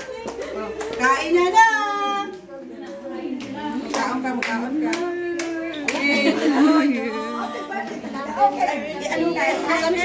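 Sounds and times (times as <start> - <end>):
people clapping: 0.0 - 8.2.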